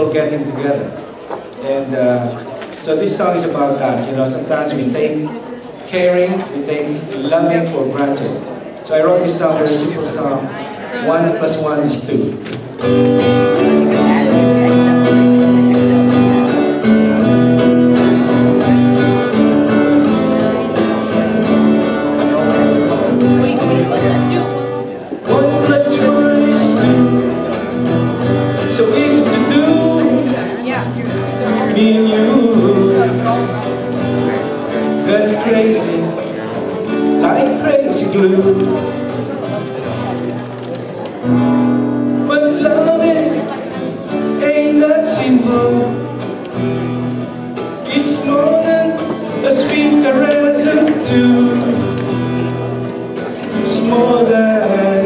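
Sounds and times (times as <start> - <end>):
acoustic guitar strumming: 0.0 - 55.0
man singing: 19.3 - 39.6, 42.1 - 46.4, 47.5 - 55.0.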